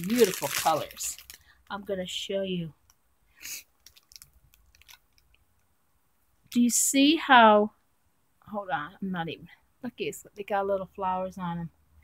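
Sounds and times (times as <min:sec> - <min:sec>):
faint crinkling: 0:00.0 - 0:01.9, 0:02.8 - 0:05.8.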